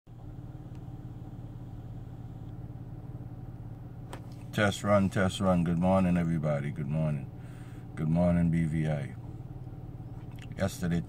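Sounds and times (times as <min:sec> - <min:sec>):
car hum from inside cabin: 0:00.1 - 0:11.0.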